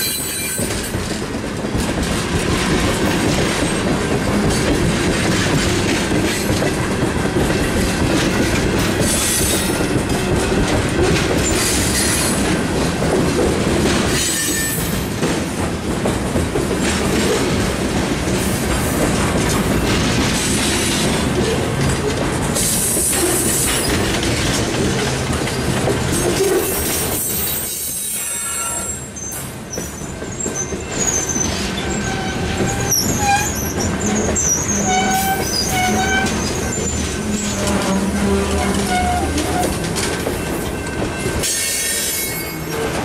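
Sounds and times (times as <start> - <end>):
train wheels rumbling on rails: 0.0 - 43.0
high pitched wheel squeals: 30.3 - 39.7.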